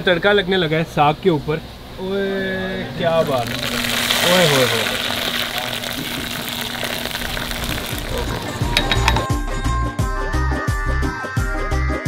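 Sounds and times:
hot ghee sizzling: 2.9 - 9.4.

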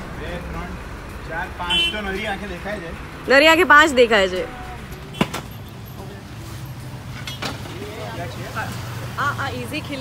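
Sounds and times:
traffic hum: 0.0 - 10.0.

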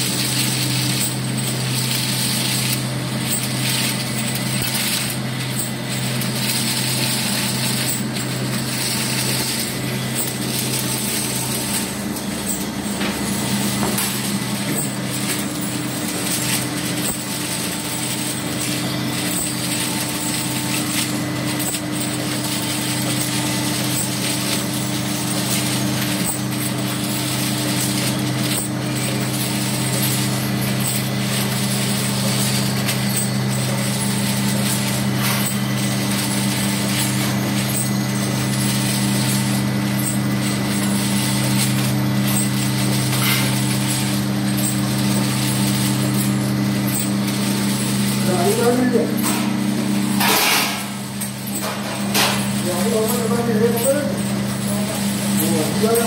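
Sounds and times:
filling machine humming and rattling: 0.0 - 56.0.

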